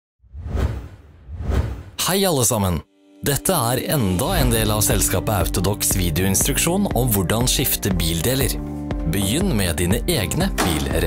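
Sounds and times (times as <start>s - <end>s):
whoosh sound effects: 0.3s - 2.0s.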